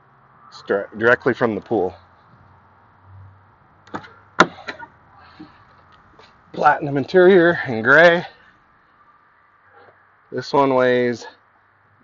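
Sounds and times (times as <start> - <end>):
cab door clicks: 3.9 - 4.9.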